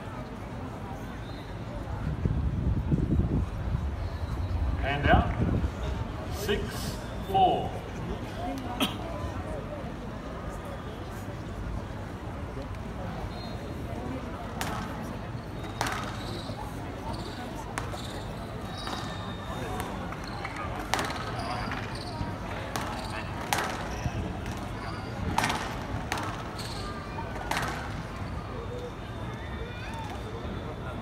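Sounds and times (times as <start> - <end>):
shoes squeaking on court: 15.4 - 25.6, 26.4 - 27.0
squash ball smacks: 22.7 - 23.9, 27.4 - 27.8.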